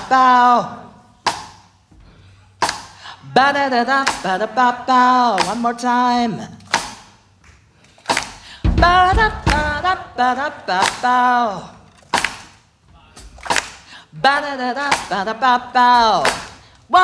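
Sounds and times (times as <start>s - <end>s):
woman singing: 0.0s - 1.1s, 3.0s - 6.7s, 8.6s - 12.0s, 14.0s - 17.0s
percussive hits: 1.2s - 1.8s, 8.1s - 11.1s, 11.9s - 13.9s, 16.2s - 16.6s.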